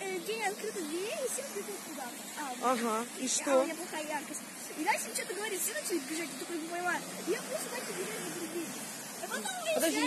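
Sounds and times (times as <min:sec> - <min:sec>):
passing street traffic: 0:00.0 - 0:10.0
voices talking: 0:00.0 - 0:10.0.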